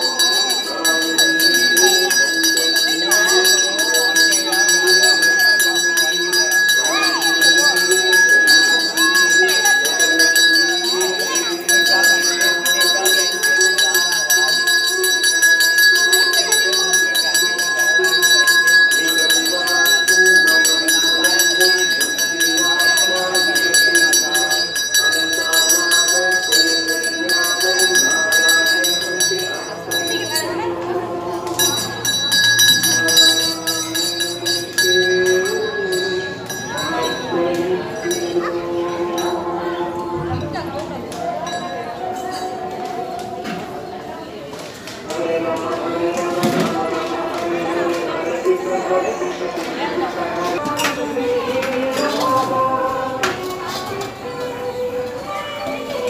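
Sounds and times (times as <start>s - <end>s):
hand bell ringing: 0.0s - 40.2s
group of voices: 0.0s - 56.0s.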